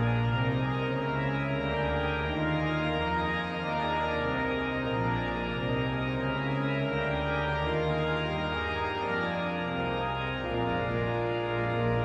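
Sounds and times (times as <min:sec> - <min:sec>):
pipe organ playing full chords: 0:00.0 - 0:12.0.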